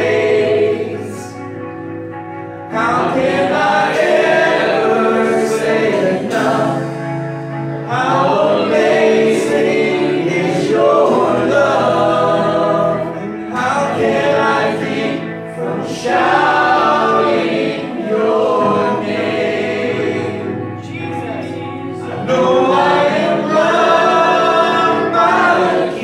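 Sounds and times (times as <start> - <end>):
electric guitar: 0.0 - 26.0
keyboard: 0.0 - 26.0
voices singing along: 0.0 - 26.0.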